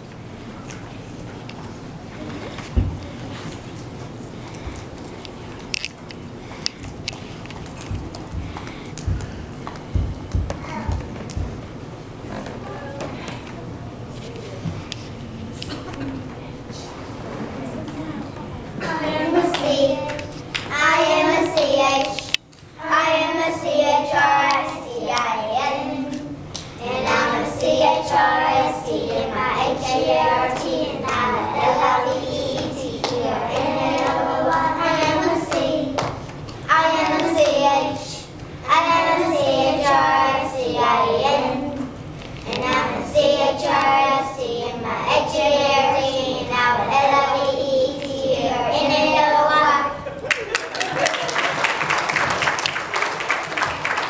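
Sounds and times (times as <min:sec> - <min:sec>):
children singing together: 0:18.8 - 0:50.2.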